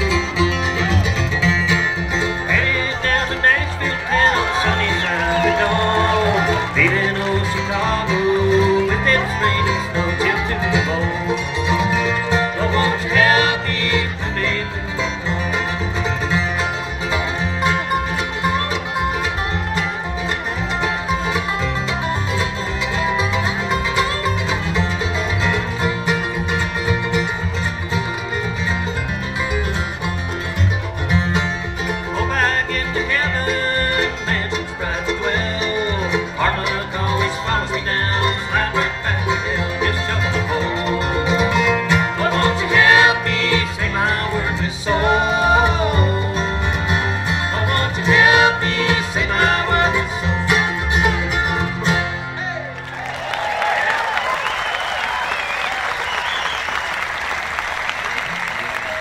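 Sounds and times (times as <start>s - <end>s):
acoustic guitar: 0.0s - 52.8s
banjo: 0.0s - 55.5s
acoustic bluegrass band: 0.0s - 59.0s.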